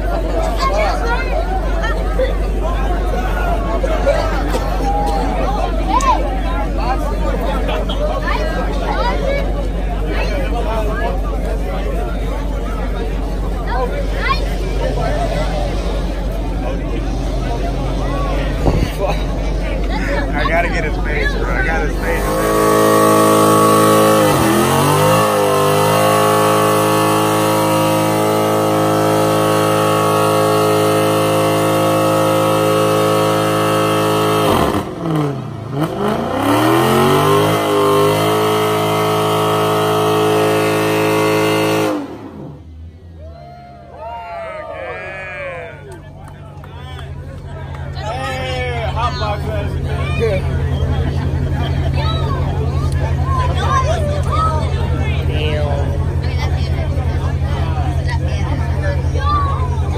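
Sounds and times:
crowd voices: 0:00.0 - 0:59.9
car engine revving high: 0:05.6 - 0:43.3.

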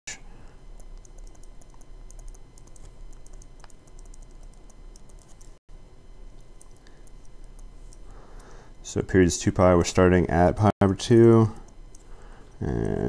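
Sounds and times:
steady low hum: 0:00.1 - 0:13.0.

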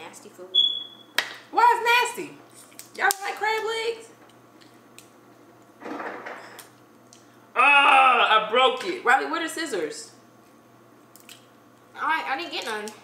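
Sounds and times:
person making wordless sounds: 0:07.6 - 0:08.7.

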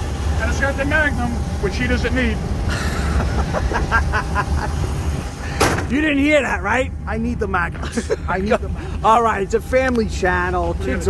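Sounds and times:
steady low rumble: 0:00.0 - 0:11.0
men's voices: 0:00.3 - 0:11.0
man laughing: 0:02.6 - 0:05.7, 0:07.7 - 0:09.0.

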